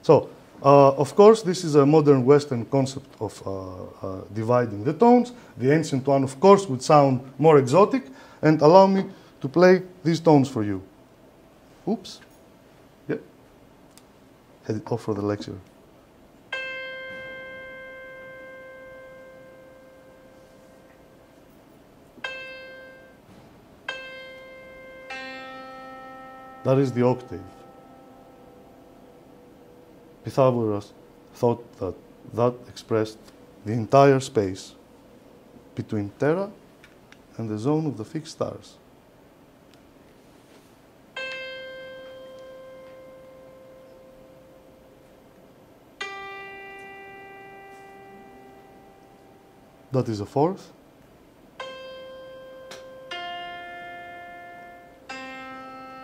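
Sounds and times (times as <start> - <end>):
single ringing musical note: 16.4 - 35.7, 41.1 - 50.8, 51.5 - 56.0.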